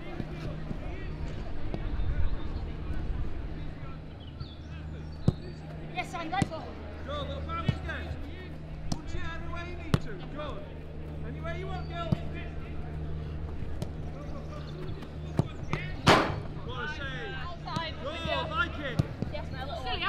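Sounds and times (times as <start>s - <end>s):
steady low hum: 0.0s - 20.0s
boot kicking football: 15.4s - 16.5s.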